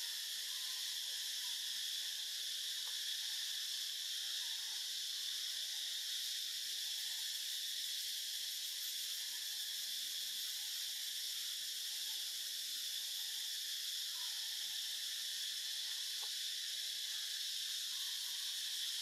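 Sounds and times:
insects buzzing shrilly: 0.0 - 19.0.

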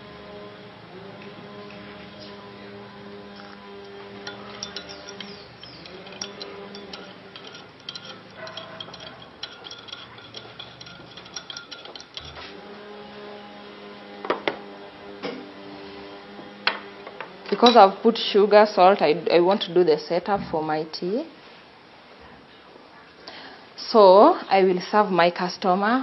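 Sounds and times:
teaspoon clinking in ceramic cup: 3.3 - 12.6
spoon knocking on cup: 3.4 - 12.5.

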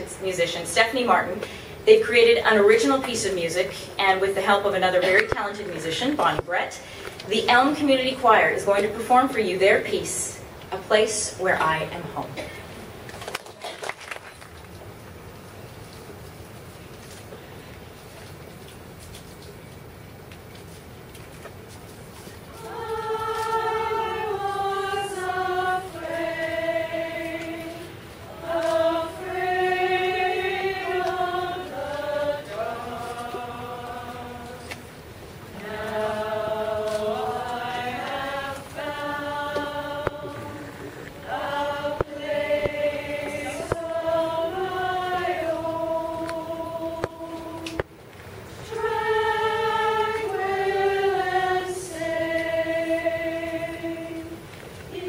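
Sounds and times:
singers breathing: 1.4 - 1.8, 6.8 - 7.2, 40.4 - 41.2
women's choir singing: 22.5 - 55.0.

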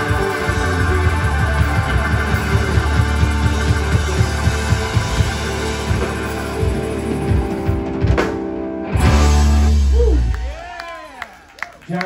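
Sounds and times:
drum kit beat: 0.0 - 10.6
electric guitars: 0.0 - 10.6
low bass notes: 0.0 - 10.6.

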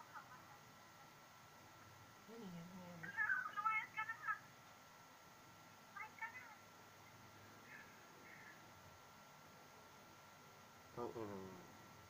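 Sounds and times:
thin steady whine: 0.0 - 12.0.

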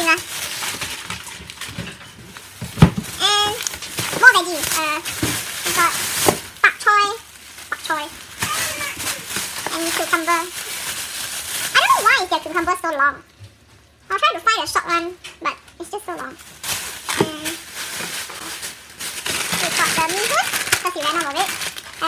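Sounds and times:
plastic bags crinkling: 0.0 - 12.8, 16.1 - 22.0
high-pitched voiced exclamations: 7.0 - 9.3.

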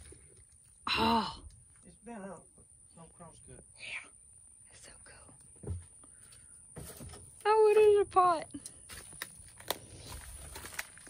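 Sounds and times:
footsteps on leaves and boards: 8.8 - 11.0.

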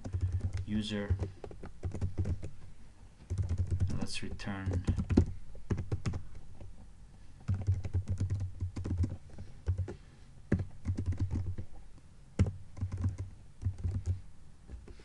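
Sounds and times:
typing on computer keyboard: 0.0 - 2.5, 3.3 - 6.2, 7.5 - 11.7, 12.4 - 14.2.

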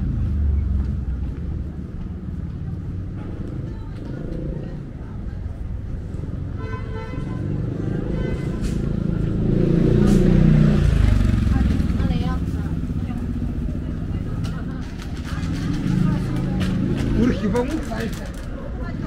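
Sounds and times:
people talking: 2.0 - 6.4, 10.7 - 19.0
motorbike passing by: 7.2 - 19.0.

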